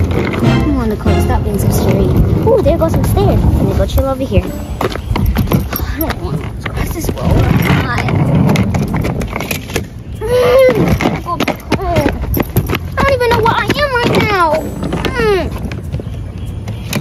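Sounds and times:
suitcase wheels rattling on asphalt: 0.0 - 17.0
child's voice: 13.0 - 15.6.

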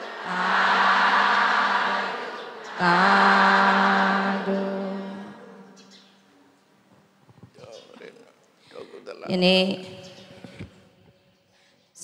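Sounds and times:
many voices chanting in unison: 0.0 - 5.9.

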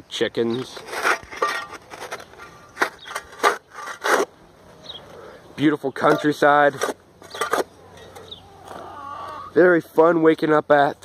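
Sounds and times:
scraping in dirt and gravel: 0.1 - 11.0.

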